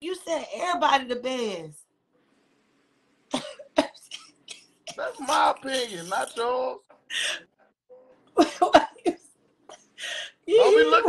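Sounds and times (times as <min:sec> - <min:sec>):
person coughing: 0:03.3 - 0:05.3, 0:08.4 - 0:09.9.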